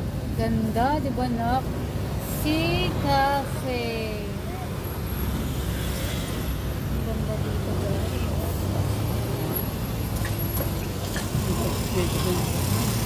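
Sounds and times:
car road and engine noise: 0.0 - 13.0.

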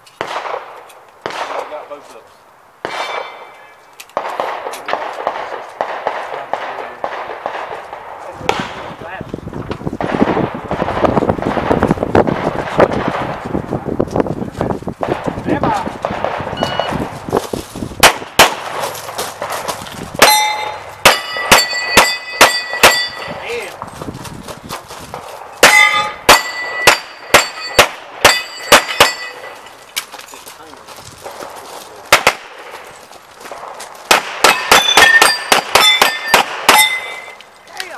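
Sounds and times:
pistol shots: 0.2 - 2.0, 2.8 - 9.0, 10.0 - 13.4, 15.0 - 17.2, 18.0 - 23.4, 25.2 - 29.7, 31.2 - 32.9, 33.5 - 37.4
steel targets clanging: 20.2 - 23.7, 25.6 - 30.0, 34.4 - 37.7.

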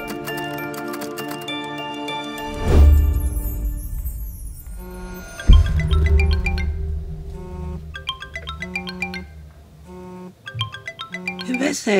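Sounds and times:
low hum: 3.6 - 10.2
smartphone ringtone melody: 4.7 - 11.9.

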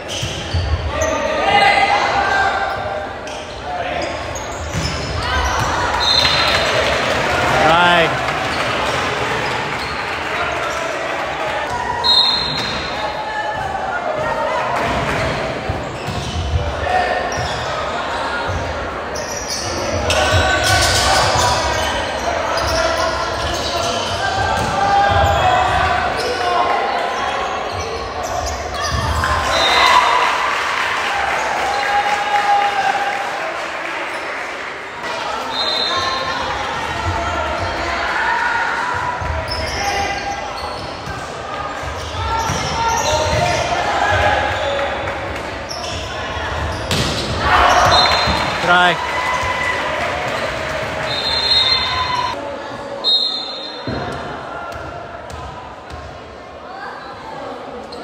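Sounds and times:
spectators talking: 0.0 - 29.6, 34.1 - 58.0
players calling out: 1.0 - 10.8, 45.7 - 52.4.

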